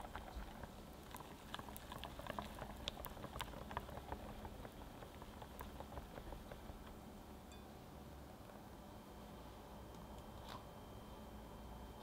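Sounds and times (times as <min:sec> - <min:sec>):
whisk beating batter in bowl: 0:00.0 - 0:07.0.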